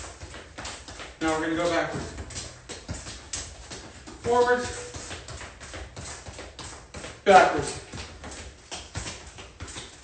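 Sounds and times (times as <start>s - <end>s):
sneaker taps on concrete: 0.0s - 10.0s
soccer ball touches: 0.0s - 10.0s.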